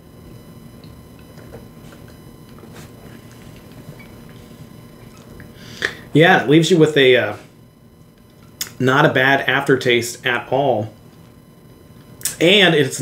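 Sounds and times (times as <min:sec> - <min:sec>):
low room noise: 0:00.0 - 0:13.0
mouth clicks: 0:05.1 - 0:06.0.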